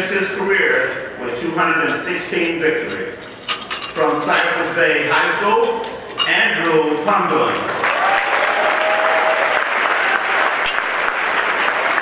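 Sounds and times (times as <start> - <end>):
man speaking into microphone: 0.0 - 3.2, 4.0 - 7.7.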